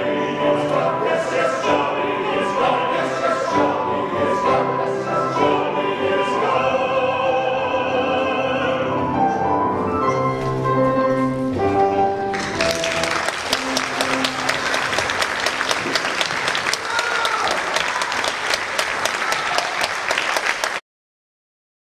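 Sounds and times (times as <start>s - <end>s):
piano chord: 7.8s - 15.7s
audience applause: 12.3s - 20.8s.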